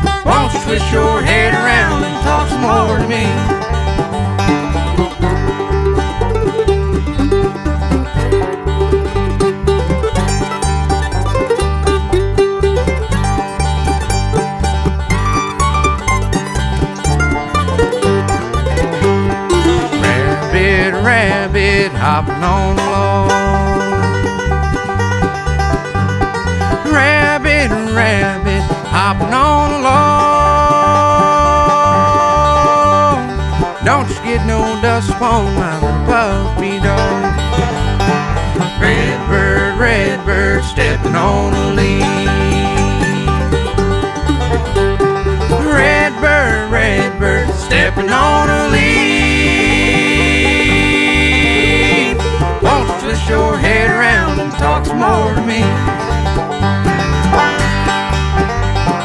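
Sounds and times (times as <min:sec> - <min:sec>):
person singing: 0:00.0 - 0:03.6, 0:19.8 - 0:24.0, 0:26.8 - 0:37.3, 0:38.6 - 0:43.5, 0:45.5 - 0:56.0
banjo picking: 0:00.0 - 0:59.0
bluegrass band playing: 0:00.0 - 0:59.0
steady bass beat: 0:00.0 - 0:59.0.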